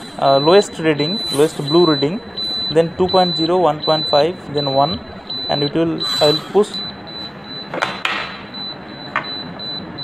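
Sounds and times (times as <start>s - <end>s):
high-pitched electronic beep: 0.2s - 7.7s.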